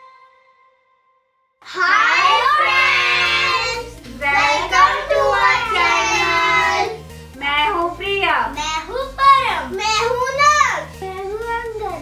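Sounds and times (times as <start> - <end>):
children and woman chanting in unison: 1.6 - 7.0
light background music: 1.6 - 12.0.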